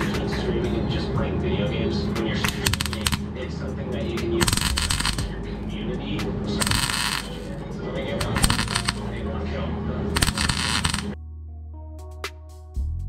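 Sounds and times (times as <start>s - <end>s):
background music: 0.0s - 13.0s
welding crackle: 2.5s - 3.2s, 4.4s - 5.3s, 6.6s - 7.5s, 8.2s - 9.2s, 10.2s - 11.2s.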